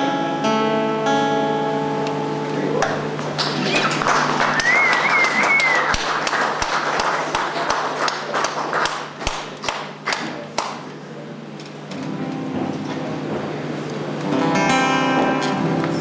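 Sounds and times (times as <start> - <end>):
audience applauding: 2.8 - 10.8
wavering whistle: 3.7 - 6.0.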